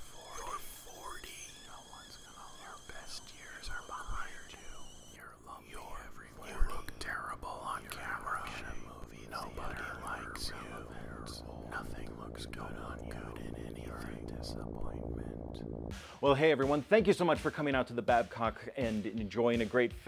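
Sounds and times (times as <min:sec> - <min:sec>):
person whispering: 0:00.0 - 0:15.6.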